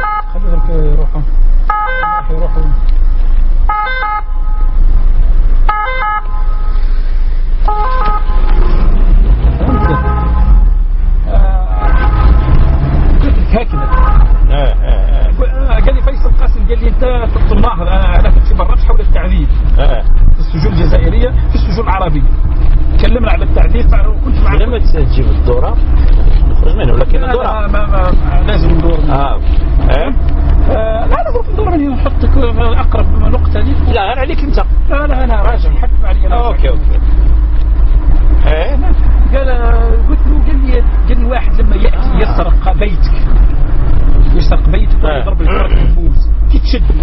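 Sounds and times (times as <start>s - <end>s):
people talking: 0.0s - 1.3s, 2.2s - 2.8s, 9.6s - 10.4s, 11.2s - 12.3s, 13.2s - 22.4s, 23.0s - 37.0s, 38.4s - 43.4s, 44.3s - 47.0s
steady low rumble: 0.0s - 47.0s.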